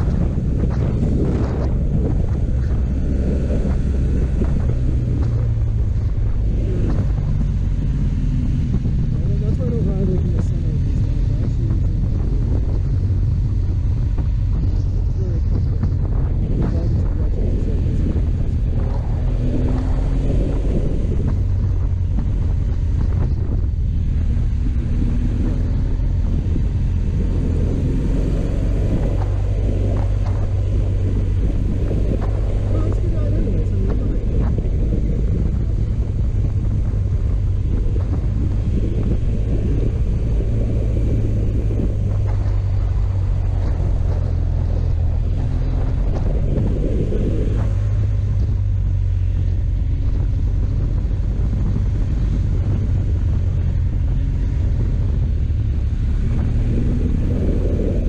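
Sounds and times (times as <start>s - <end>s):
motorcycle engine rumbling: 0.0s - 58.0s
wind rushing over microphone: 0.0s - 58.0s.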